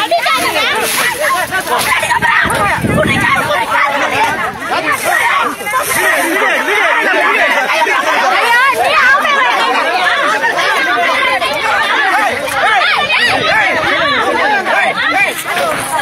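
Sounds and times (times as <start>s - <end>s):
crowd shouting and arguing: 0.0s - 16.0s.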